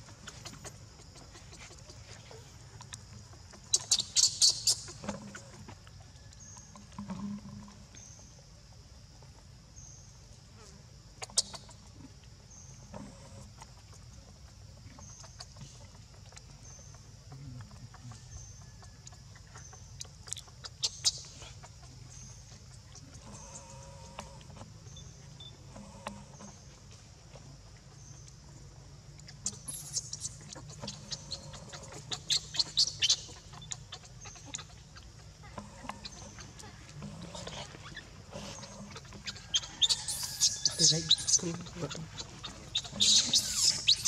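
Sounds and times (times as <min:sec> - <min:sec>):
baby monkey squealing: 0:03.7 - 0:05.0, 0:29.4 - 0:34.7, 0:37.4 - 0:44.0.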